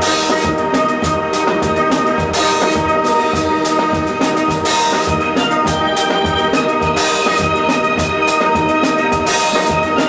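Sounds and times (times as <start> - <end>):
drum kit beat: 0.0 - 10.0
steelpan orchestra melody: 0.0 - 10.0.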